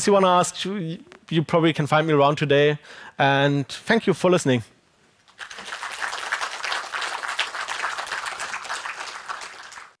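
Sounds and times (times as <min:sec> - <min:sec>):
audience applauding: 0:05.3 - 0:10.0.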